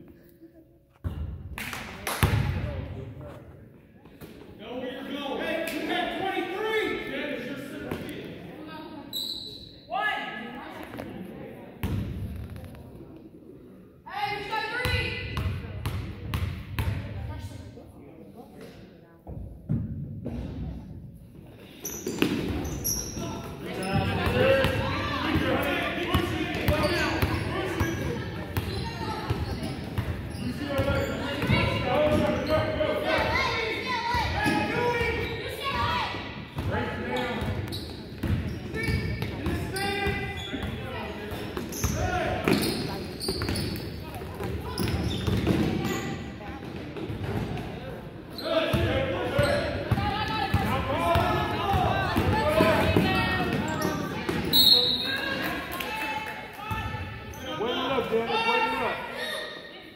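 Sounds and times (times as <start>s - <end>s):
people calling out in echoing gym: 1.7s - 11.8s, 13.0s - 59.9s.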